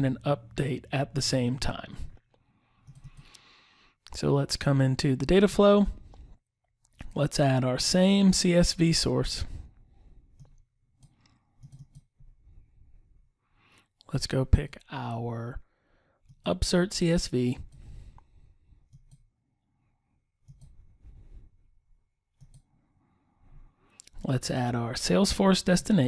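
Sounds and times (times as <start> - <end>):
computer mouse clicks: 2.8 - 3.4, 10.3 - 12.2, 18.9 - 19.3, 20.4 - 20.8, 22.4 - 22.7.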